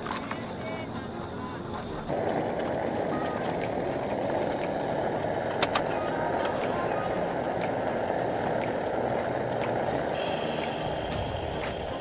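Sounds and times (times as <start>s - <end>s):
gas flame hissing: 1.8s - 12.0s.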